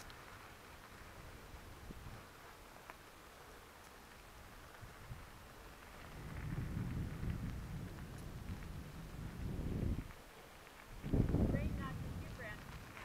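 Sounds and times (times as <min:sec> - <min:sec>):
wind buffeting microphone: 0:00.0 - 0:02.6, 0:04.2 - 0:13.0.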